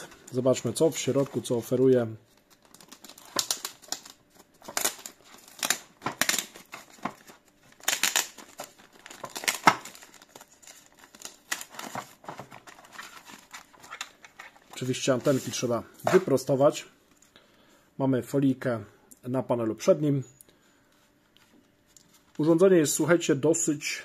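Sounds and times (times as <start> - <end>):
plastic bag crinkling: 0.0 - 15.4.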